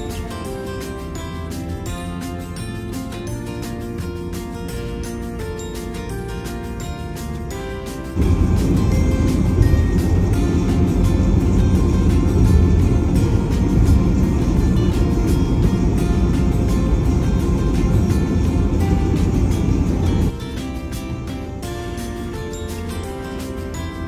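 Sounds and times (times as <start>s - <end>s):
background music: 0.0s - 24.0s
car road rumble inside cabin: 8.2s - 20.3s.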